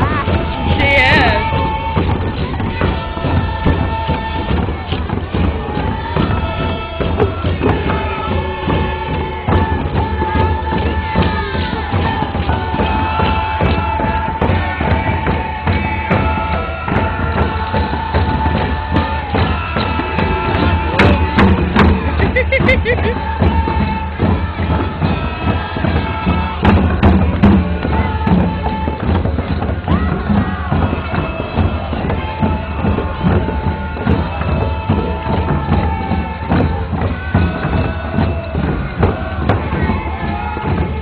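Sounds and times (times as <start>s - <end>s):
frame drums: 0.0s - 41.0s
group of voices singing: 0.0s - 41.0s.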